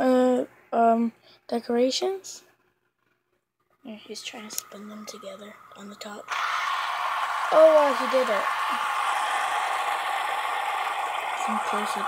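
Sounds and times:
fidget spinners whirring: 0:04.0 - 0:12.0.

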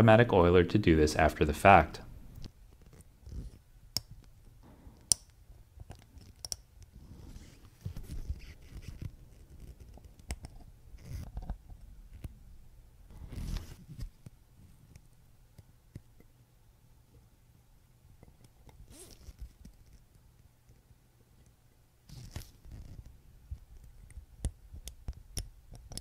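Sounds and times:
soft rubbing and scraping: 0:06.9 - 0:10.2, 0:13.1 - 0:14.8.

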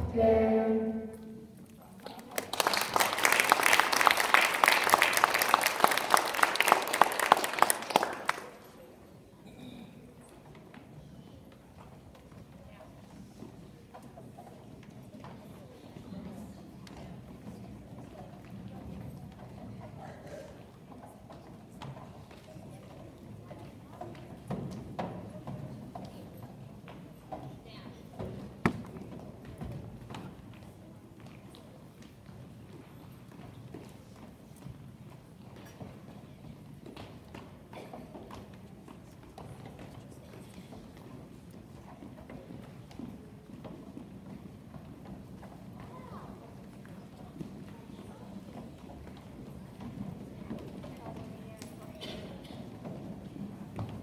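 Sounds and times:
murmur of children's voices: 0:00.0 - 0:02.6, 0:08.2 - 0:54.0.

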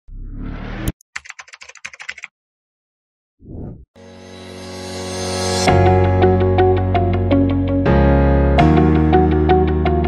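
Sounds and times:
keyboard typing clicks: 0:01.2 - 0:02.3.

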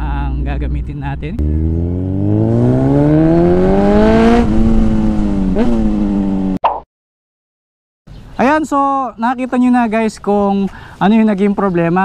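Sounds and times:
motorcycle engine accelerating: 0:00.0 - 0:06.6.

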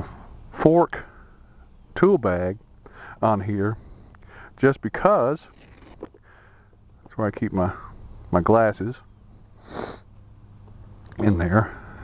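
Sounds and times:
man speaking: 0:03.2 - 0:03.8, 0:07.1 - 0:09.0, 0:11.1 - 0:11.8
man sniffing: 0:09.6 - 0:10.1.

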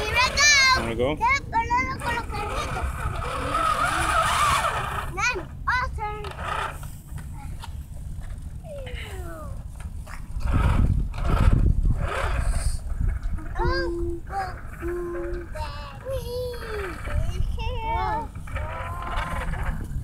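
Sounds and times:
children calling out: 0:13.4 - 0:19.8.

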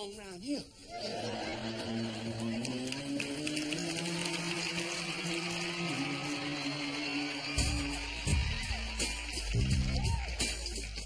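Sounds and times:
bass-heavy music: 0:01.3 - 0:11.0.

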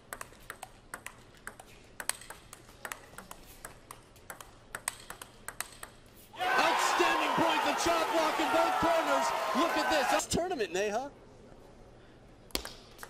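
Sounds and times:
table tennis ball clicking: 0:00.0 - 0:06.1.

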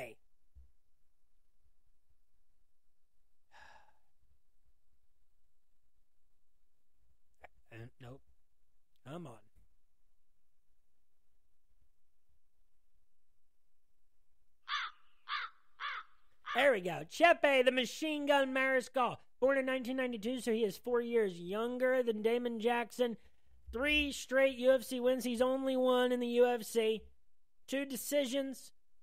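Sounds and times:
short breath: 0:03.5 - 0:04.1
bird calling harshly: 0:14.6 - 0:16.6.

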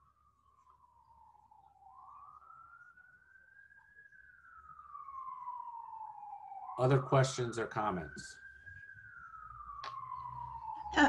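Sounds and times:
faint emergency vehicle siren wailing: 0:00.0 - 0:11.0.

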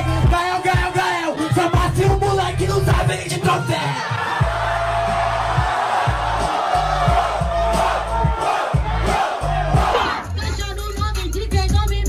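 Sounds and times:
crowd yelling and cheering: 0:00.0 - 0:10.6
hip-hop beat with heavy bass: 0:00.0 - 0:12.0.

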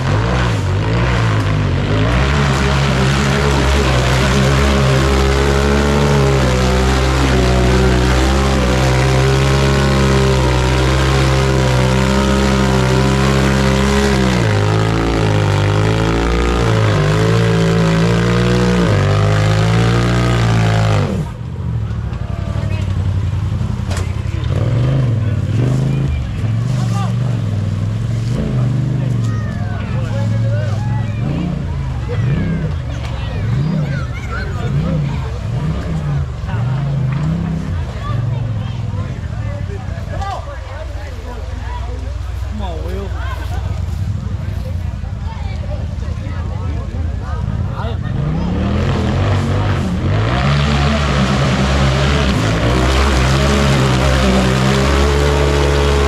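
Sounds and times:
buggy engine revving hard: 0:00.0 - 0:21.7, 0:22.4 - 0:40.3, 0:45.9 - 0:56.0.

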